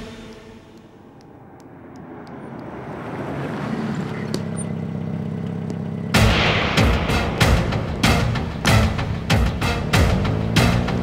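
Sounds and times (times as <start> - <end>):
car approaching: 0.0 - 11.0
car engine idling: 0.0 - 11.0.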